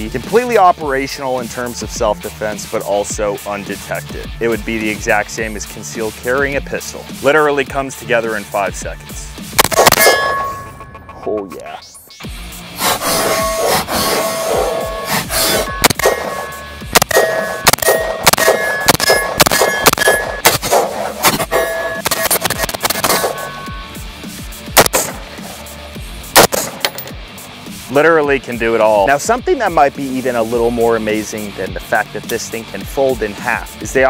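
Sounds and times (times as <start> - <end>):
background music: 0.0 - 34.0
rifle shots: 9.6 - 10.6, 15.4 - 23.6, 24.8 - 25.4, 26.4 - 27.1
metallic ringing clangs: 10.0 - 11.2, 14.7 - 20.4, 23.0 - 23.8.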